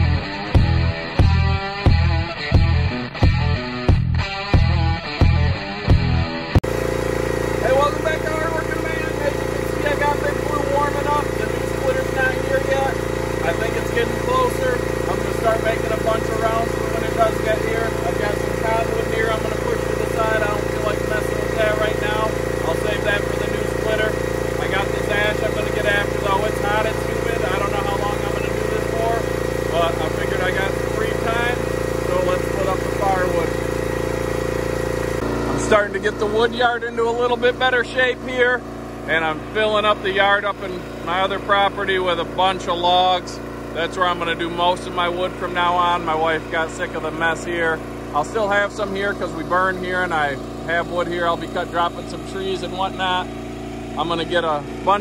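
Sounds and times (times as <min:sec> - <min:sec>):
rock guitar: 0:00.0 - 0:49.4
small engine idling: 0:06.6 - 0:55.0.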